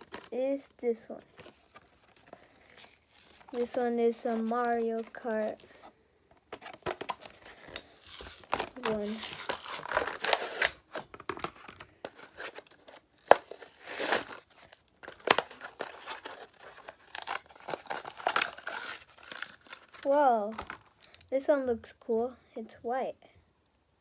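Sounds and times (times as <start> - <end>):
plastic blister crinkling: 0.0 - 21.3
card backing ripping: 1.3 - 5.3, 6.5 - 20.8.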